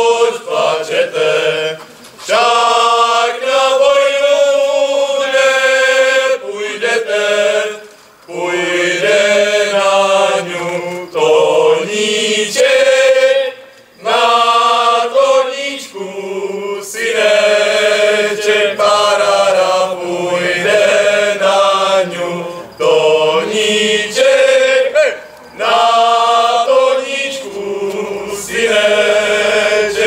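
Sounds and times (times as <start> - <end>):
young men singing in unison: 0.0 - 30.0.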